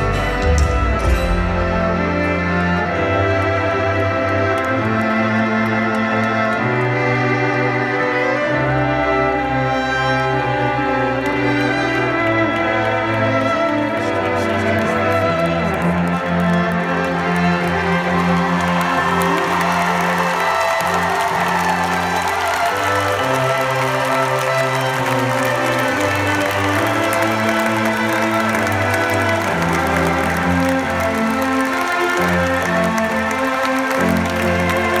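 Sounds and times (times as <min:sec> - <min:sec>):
crowd applauding and cheering: 0:00.0 - 0:35.0
live band with strings: 0:00.0 - 0:35.0.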